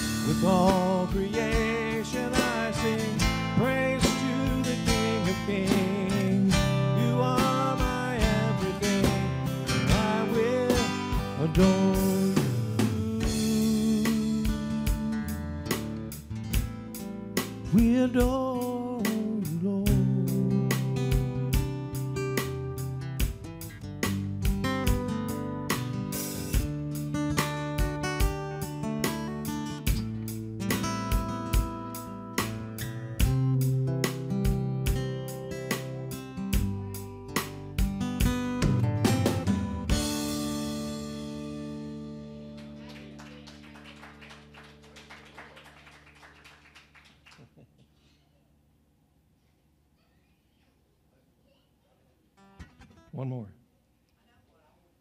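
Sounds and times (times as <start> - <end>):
man singing gospel song: 0.0 - 15.3, 17.6 - 21.0
acoustic guitar strumming: 0.0 - 43.4, 52.4 - 53.1.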